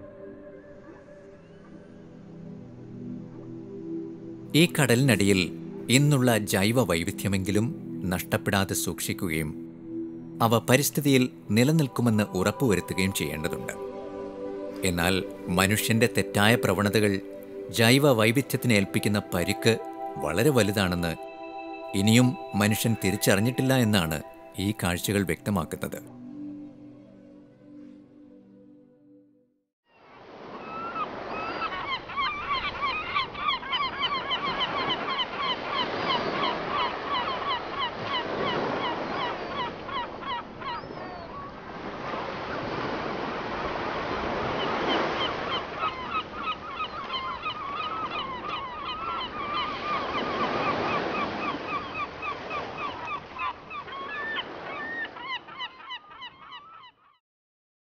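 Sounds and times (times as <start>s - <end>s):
waves washing in: 30.0s - 32.5s, 34.4s - 40.6s, 41.3s - 48.7s
flock of birds calling: 30.6s - 41.6s, 44.4s - 56.9s.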